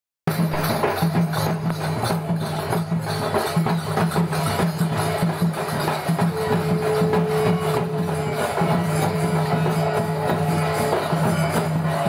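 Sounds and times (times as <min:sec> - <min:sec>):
barrel drums: 0:00.3 - 0:12.0
hand cymbals struck: 0:00.3 - 0:12.0
steady held note: 0:06.2 - 0:12.0.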